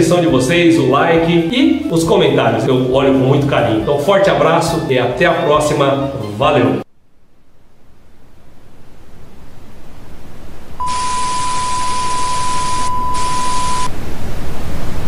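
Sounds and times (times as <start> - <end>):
steady high beep: 10.8 - 13.9.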